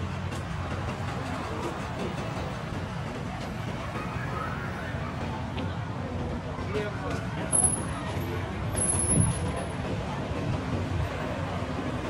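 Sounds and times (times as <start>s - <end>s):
rumble of passing cars and scooters: 0.0s - 12.0s
people talking: 0.7s - 12.0s.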